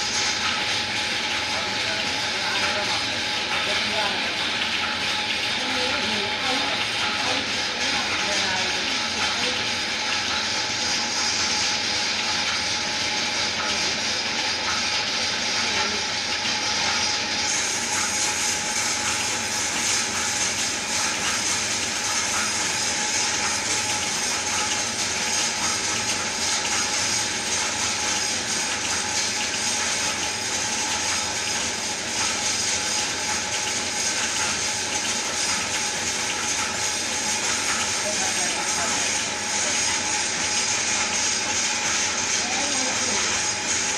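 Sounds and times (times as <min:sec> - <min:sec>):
lathe machine hum: 0:00.0 - 0:43.9.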